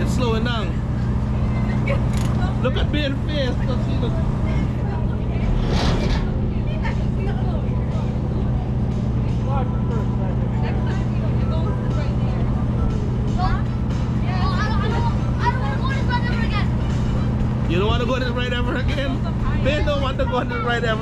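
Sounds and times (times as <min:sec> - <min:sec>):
low drone of running machinery: 0:00.0 - 0:21.0
voices of children and people: 0:00.0 - 0:21.0.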